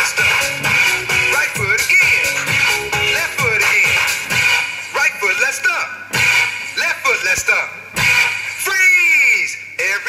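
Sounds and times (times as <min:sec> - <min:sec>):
electronic dance track: 0:00.0 - 0:10.0.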